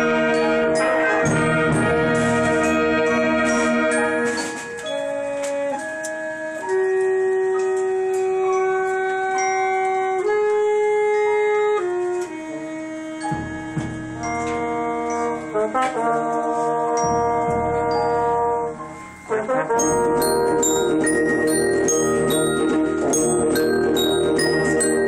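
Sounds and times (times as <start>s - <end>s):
wind band playing held chords: 0.0s - 25.0s.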